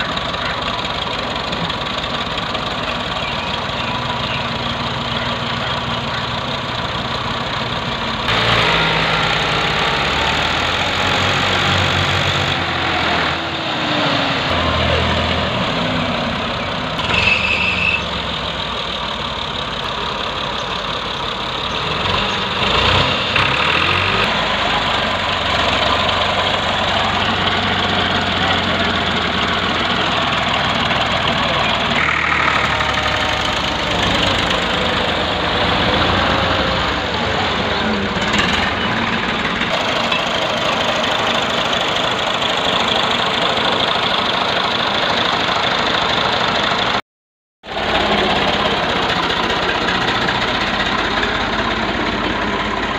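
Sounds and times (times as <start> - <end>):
tractor engines running: 0.0 - 47.0, 47.6 - 52.9.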